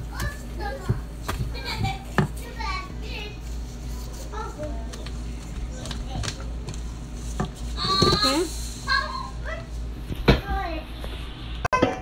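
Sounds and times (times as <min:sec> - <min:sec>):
steady low hum: 0:00.0 - 0:11.7.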